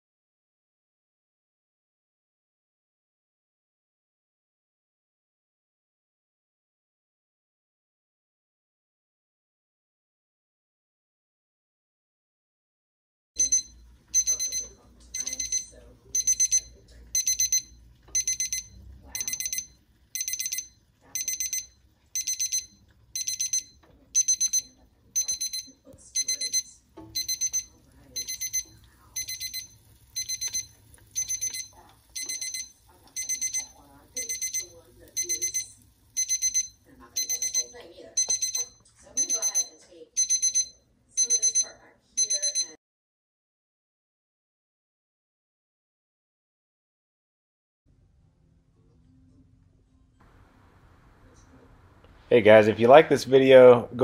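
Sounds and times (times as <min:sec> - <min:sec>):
thermometer alarm beeping: 0:13.4 - 0:42.8.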